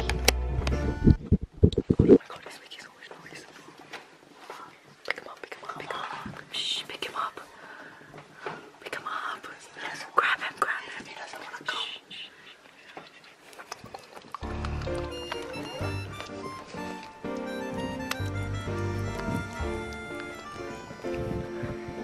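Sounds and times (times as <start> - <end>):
hushed whispering: 2.1 - 3.7, 4.5 - 7.6, 8.8 - 13.5.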